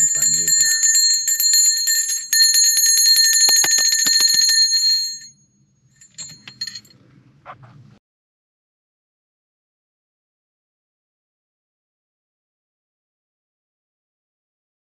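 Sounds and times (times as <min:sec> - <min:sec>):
brass hand bell ringing: 0:00.0 - 0:05.4, 0:06.0 - 0:06.9.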